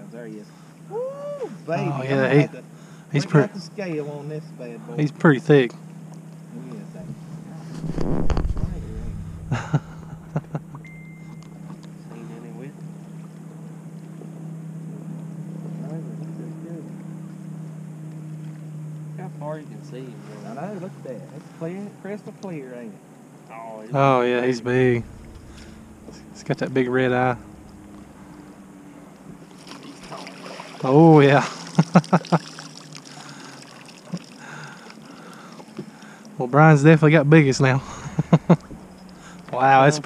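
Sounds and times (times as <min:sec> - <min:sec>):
boat motor humming: 0:05.8 - 0:21.7, 0:24.4 - 0:40.0
short laugh: 0:09.5 - 0:10.8, 0:37.8 - 0:38.8
brief high beep: 0:10.8 - 0:11.6
landing net going into water: 0:24.8 - 0:36.0
fish splashing at water surface: 0:29.4 - 0:36.2.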